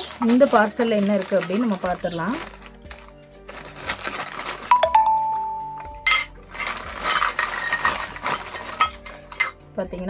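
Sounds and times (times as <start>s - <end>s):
paper bag rustling: 0.0s - 4.9s, 6.4s - 9.5s.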